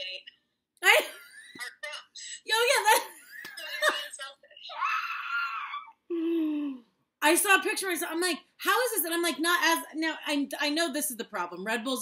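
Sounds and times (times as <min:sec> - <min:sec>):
woman laughing: 0:00.8 - 0:01.7.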